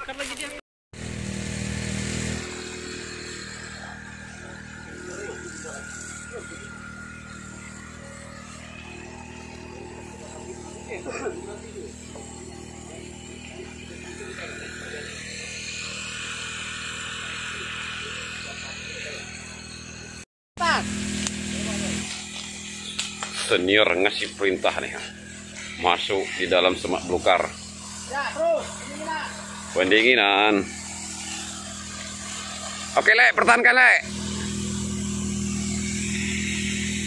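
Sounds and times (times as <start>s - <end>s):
small engine running fire pump: 0.0s - 37.0s
water spraying from fire hose: 1.8s - 19.6s, 20.6s - 37.0s.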